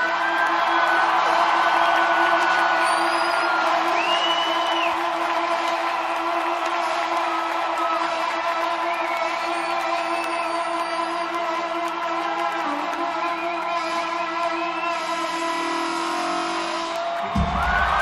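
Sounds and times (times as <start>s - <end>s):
crowd noise: 0.0s - 18.0s
trombone holding a long note: 11.0s - 18.0s.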